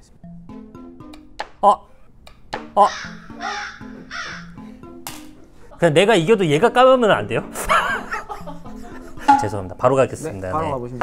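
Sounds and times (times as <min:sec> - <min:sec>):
light background music: 0:00.0 - 0:11.0
crow cawing: 0:02.6 - 0:04.7.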